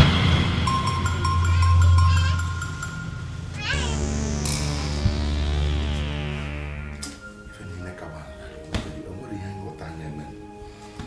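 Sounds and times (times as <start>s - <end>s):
dramatic film score drone: 0.0s - 7.4s
high wavering cry: 1.1s - 7.3s.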